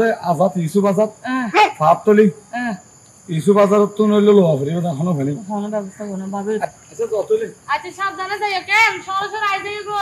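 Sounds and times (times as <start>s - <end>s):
insects chirring: 0.0s - 10.0s
people speaking: 2.6s - 10.0s.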